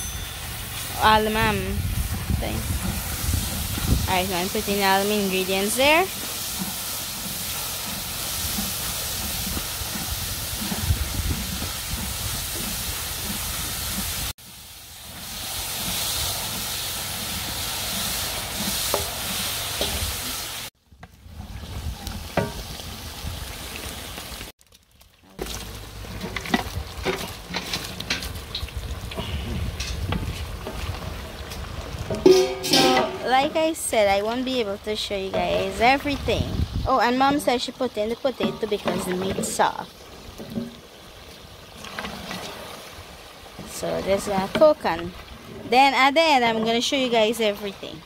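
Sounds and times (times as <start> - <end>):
onions sizzling in hot oil: 0.0 - 20.7, 25.4 - 32.9
wooden paddle stirring: 2.0 - 20.0, 25.4 - 32.4.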